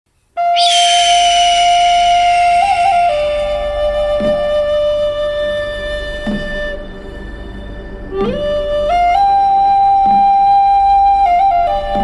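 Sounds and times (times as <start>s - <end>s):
flute long steady note: 0.4s - 12.0s
high hissy gliding sound: 0.6s - 4.2s.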